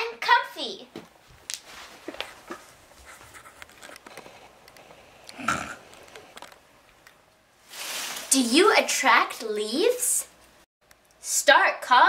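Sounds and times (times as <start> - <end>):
handling and rustling: 7.6 - 8.7.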